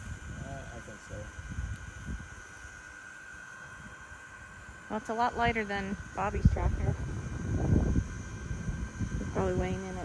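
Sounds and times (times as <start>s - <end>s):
robot lawn mower motor whine: 0.0s - 10.0s.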